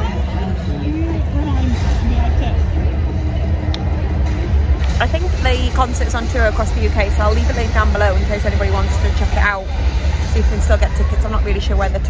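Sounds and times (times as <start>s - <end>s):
faint music: 0.0s - 12.0s
steady low rumble: 0.0s - 12.0s.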